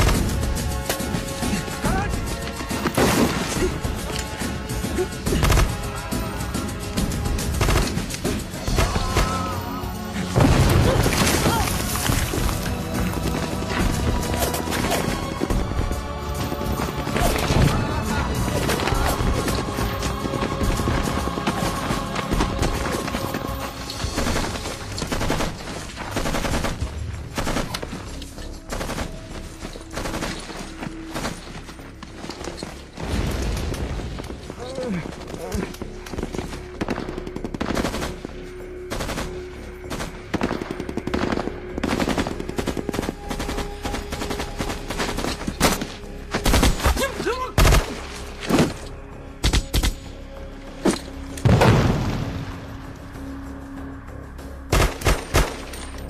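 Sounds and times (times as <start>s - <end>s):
machine-gun and rifle fire: 7.3s - 8.8s, 24.0s - 28.0s, 36.8s - 38.3s, 38.9s - 46.9s, 54.7s - 55.7s.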